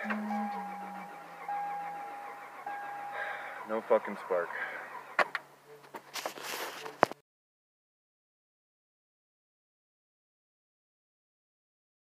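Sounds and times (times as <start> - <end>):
dashboard warning chime: 0.0 - 4.6.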